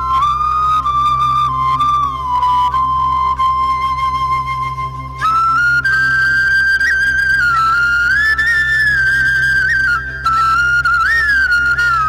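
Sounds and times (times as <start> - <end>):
solo flute melody: 0.0 - 12.0.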